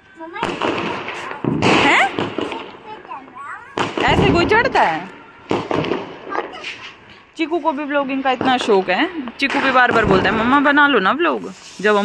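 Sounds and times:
firecracker crackling: 0.0s - 12.0s
firecracker bangs: 0.3s - 7.1s, 8.2s - 12.0s.

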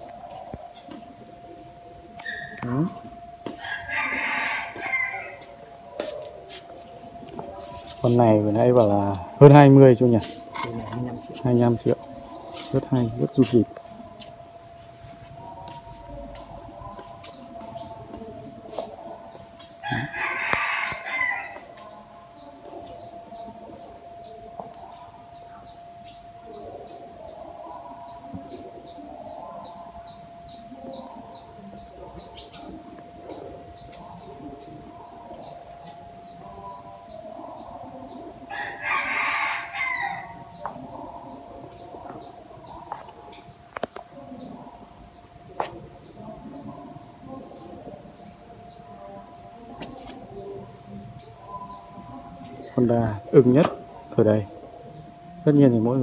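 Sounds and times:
faint hum: 0.0s - 56.0s
rooster crowing: 3.4s - 6.1s, 19.8s - 21.7s, 38.5s - 40.7s.

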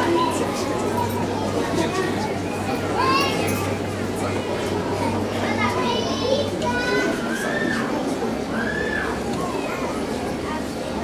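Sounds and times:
children chattering and calling out: 0.0s - 11.0s
crowd noise: 0.0s - 11.0s.

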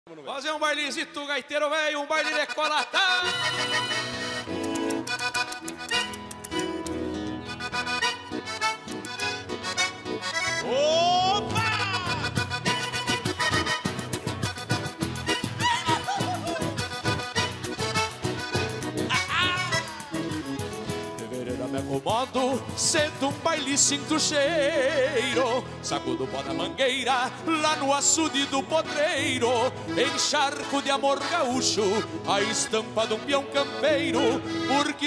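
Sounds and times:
button accordion dance tune: 2.0s - 35.0s
acoustic guitar strumming: 3.2s - 35.0s.

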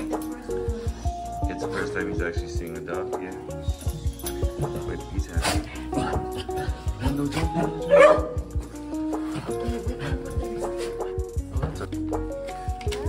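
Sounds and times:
background music: 0.0s - 13.0s
dog barking: 7.2s - 8.4s.

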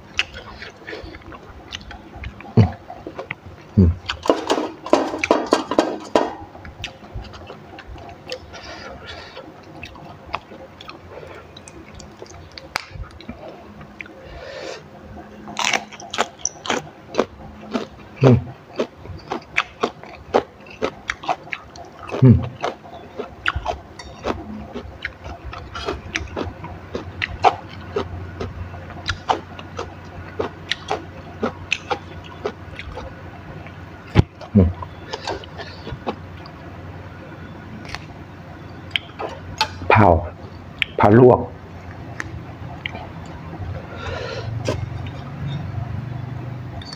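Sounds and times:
person chewing raw greens: 0.0s - 39.8s, 41.8s - 46.2s
low hum: 0.0s - 46.9s.

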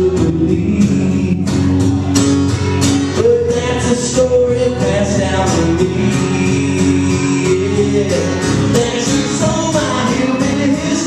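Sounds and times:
man singing country song: 0.0s - 11.0s
strummed acoustic guitar: 0.0s - 11.0s.

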